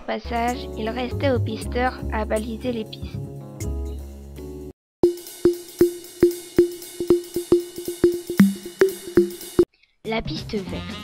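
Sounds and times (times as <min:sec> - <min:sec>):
music: 0:00.2 - 0:11.0
sharp pitched taps: 0:05.0 - 0:09.7.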